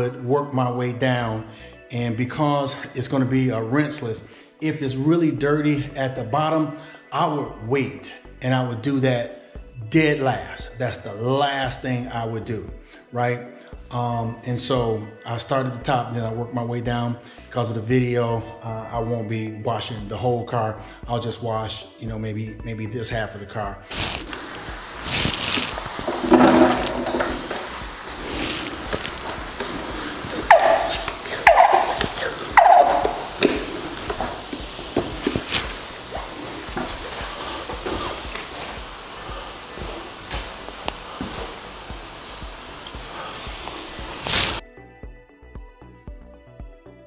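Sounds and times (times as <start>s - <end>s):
pressure sprayer hissing: 23.9s - 44.6s.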